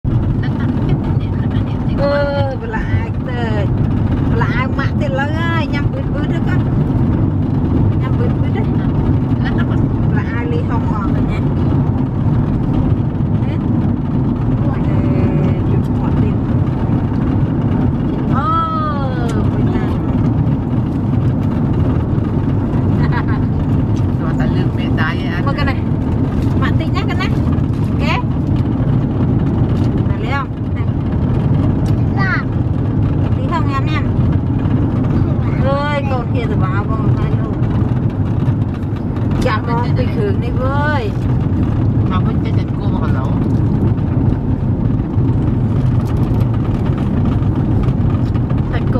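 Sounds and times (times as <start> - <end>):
car cabin road and engine rumble: 0.0 - 48.9.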